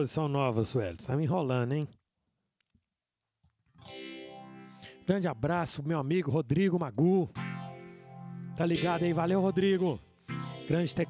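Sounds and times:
electric guitar chord ringing: 0:03.8 - 0:05.1, 0:07.4 - 0:11.0.

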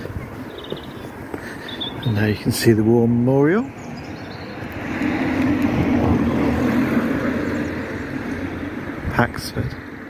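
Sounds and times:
vehicle passing by: 0:03.5 - 0:10.0.

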